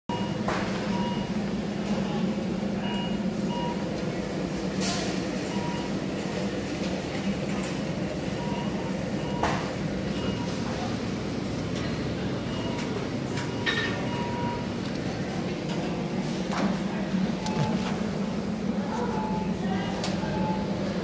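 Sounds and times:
short electronic beeps: 12.5s - 14.7s.

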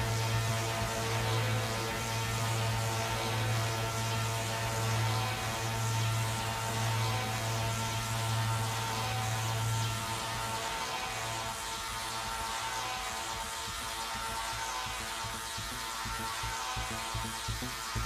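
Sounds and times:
low bass drone: 0.0s - 12.6s
sustained synth pad: 0.0s - 18.0s.

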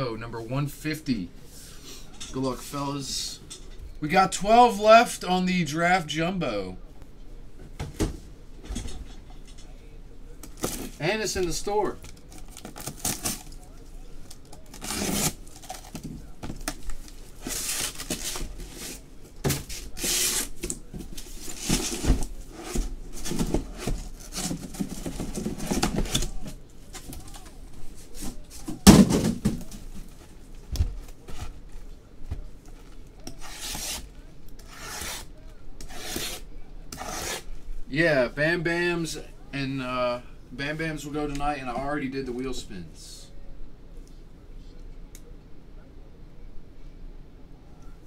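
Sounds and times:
cardboard boxes rubbing and scraping: 21.2s - 26.2s
cardboard box thump: 28.8s - 29.8s.

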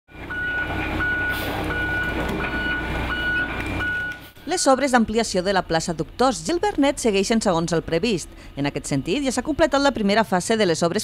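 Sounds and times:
diesel engine running: 0.1s - 11.0s
warning alarm beeping: 0.3s - 10.9s.

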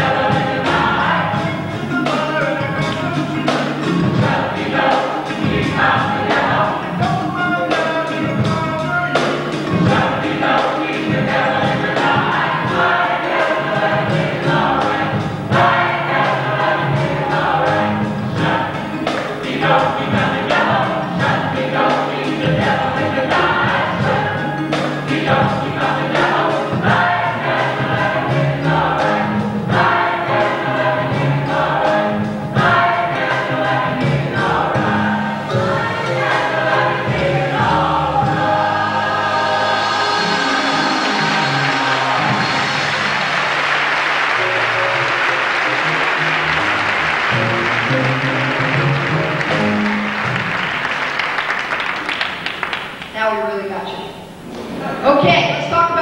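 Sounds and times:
gospel choir singing: 0.0s - 53.3s, 54.2s - 55.6s.

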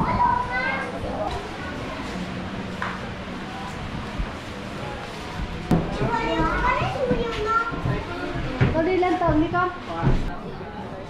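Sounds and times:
children calling and chattering: 0.0s - 2.6s, 5.9s - 9.2s
busy street hubbub: 0.0s - 11.0s.

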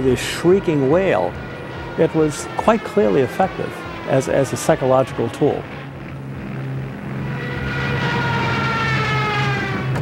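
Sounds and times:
aircraft engine drone: 0.0s - 10.0s
siren wailing: 0.0s - 10.0s.

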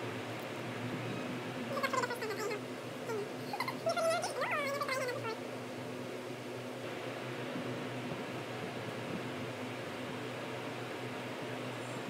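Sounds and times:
steady room hum: 0.0s - 12.0s
high-pitched vocal calls: 1.7s - 5.4s.

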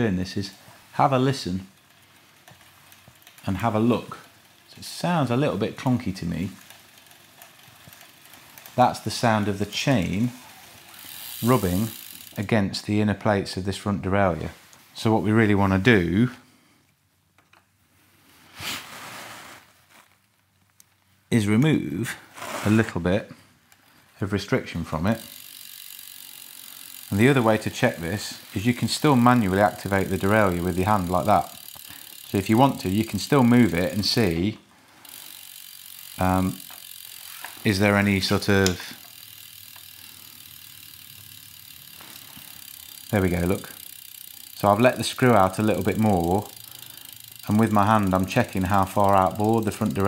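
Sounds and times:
bike chain running: 0.0s - 12.8s, 24.8s - 50.0s
faint chain ticks: 1.0s - 12.6s, 25.0s - 34.4s, 35.0s - 50.0s.

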